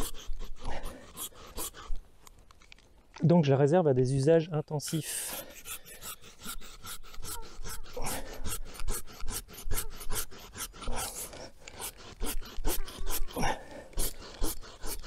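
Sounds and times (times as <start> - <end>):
pruning saw rasping through wood: 0.0 - 2.1, 4.9 - 15.0.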